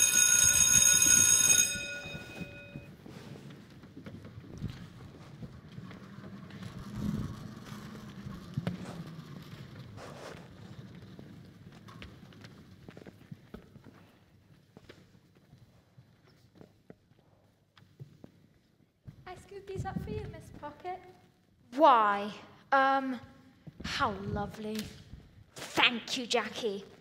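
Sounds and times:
school bell ringing: 0.0s - 2.9s
children's footsteps and shuffling: 1.8s - 21.3s.

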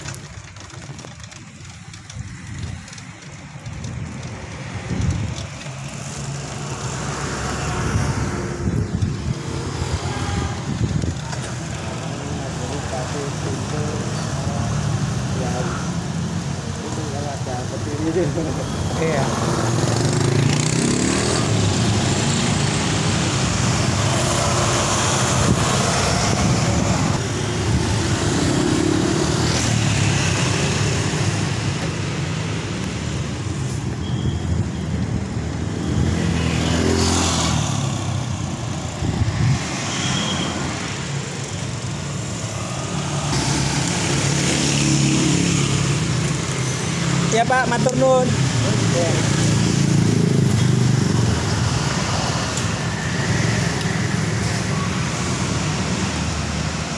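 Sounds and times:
motor scooters passing: 0.0s - 56.9s
road noise rumble: 0.0s - 56.9s
engine passing close: 16.9s - 33.6s.

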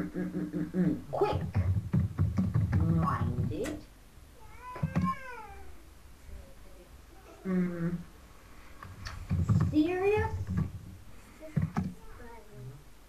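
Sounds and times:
voices: 0.0s - 1.7s, 2.7s - 8.2s, 9.4s - 10.7s.

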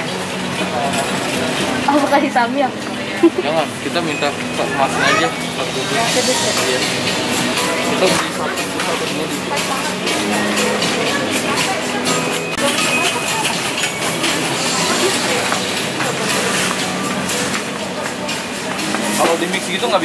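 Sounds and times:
indistinct voices: 0.0s - 20.0s
music: 0.0s - 20.0s
shopping cart rattling: 7.4s - 20.0s.

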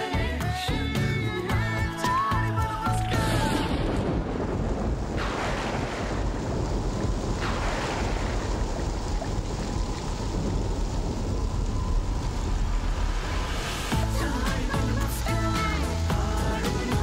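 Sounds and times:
soundtrack music: 0.0s - 4.2s, 13.5s - 17.0s
falling whooshes: 11.1s - 14.7s
loud rushing noise: 11.8s - 15.0s.

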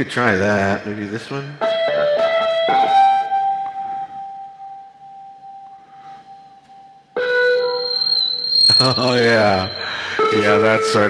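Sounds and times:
electric guitar note ringing: 1.5s - 11.0s
steady tone: 7.2s - 11.0s.

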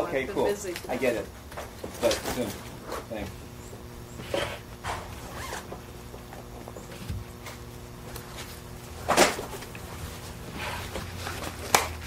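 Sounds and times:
zipper being pulled: 5.2s - 5.7s.

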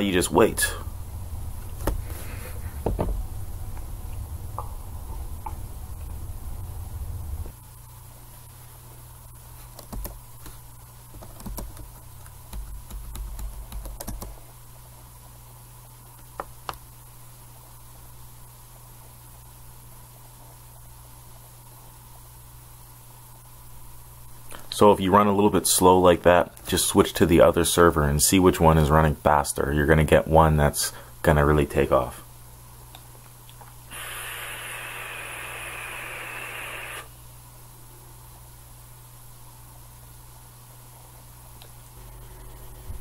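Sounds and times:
loud low rumble: 0.0s - 7.6s
steady low hum: 0.0s - 43.0s
computer keys clicking: 9.8s - 10.2s, 11.2s - 11.9s, 12.5s - 14.4s.

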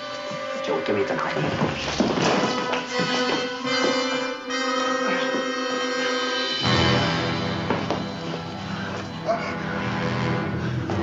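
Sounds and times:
background music with long held note: 0.0s - 11.0s.

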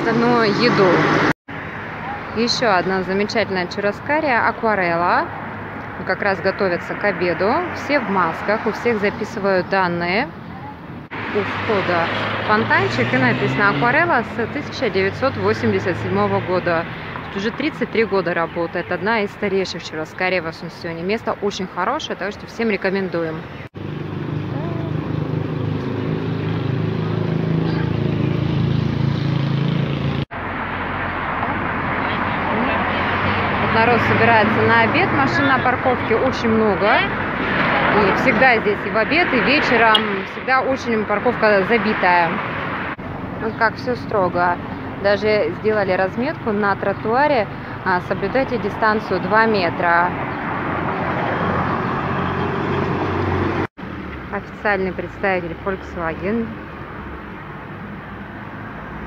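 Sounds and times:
motor vehicle passing: 0.0s - 59.0s.

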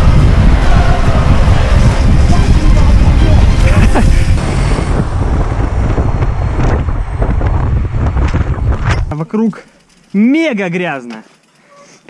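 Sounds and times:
wind buffeting microphone: 0.0s - 9.1s
bike rattling clicks: 8.1s - 11.7s.

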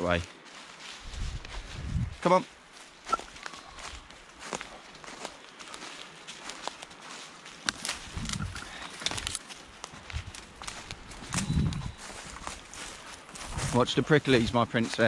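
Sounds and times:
footsteps crunching dry leaves: 0.0s - 15.0s.

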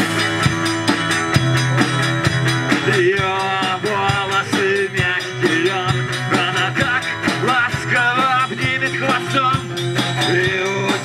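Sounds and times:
acoustic guitar: 0.0s - 11.0s
drum kit beat: 0.0s - 11.0s
electric bass guitar: 0.0s - 11.0s.

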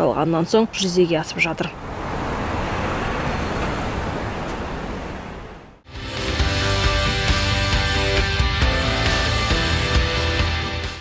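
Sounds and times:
road traffic hum: 0.0s - 10.9s.

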